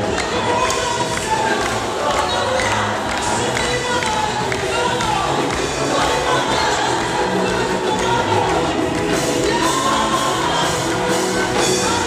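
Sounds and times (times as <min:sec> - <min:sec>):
band accompaniment with bass line: 0:00.0 - 0:12.0
gospel choir singing: 0:00.0 - 0:12.0.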